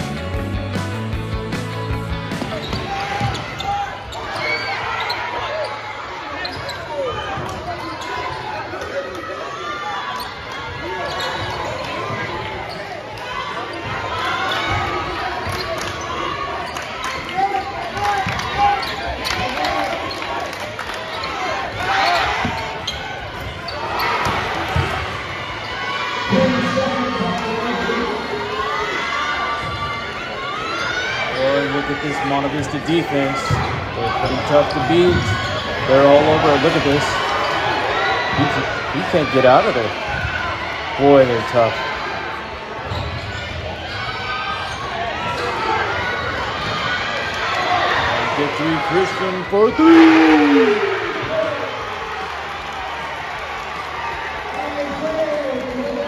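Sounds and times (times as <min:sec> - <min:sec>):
people calling out: 0:49.1 - 0:51.7.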